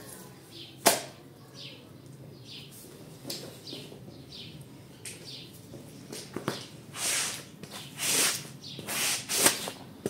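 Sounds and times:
small birds chirping: 0.1 - 9.3.

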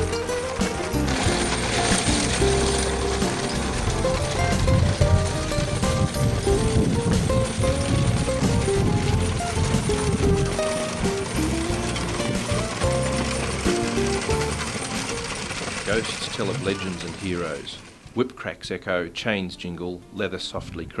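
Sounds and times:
background music with stepped melody: 0.0 - 16.4
dense low clatter of knocks: 0.0 - 17.2.

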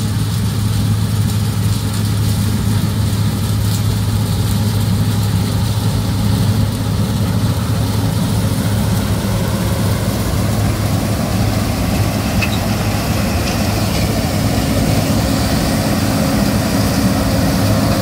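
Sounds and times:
combine harvester engine drone: 0.0 - 18.0.

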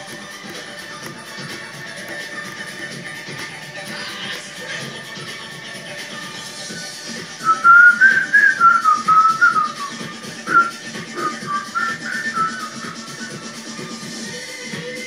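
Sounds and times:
backing music: 0.0 - 15.0
high whistle melody: 7.4 - 13.7.

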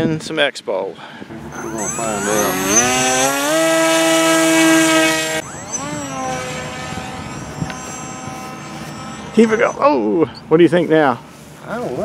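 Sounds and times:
electric motor propeller whining: 1.4 - 9.9.

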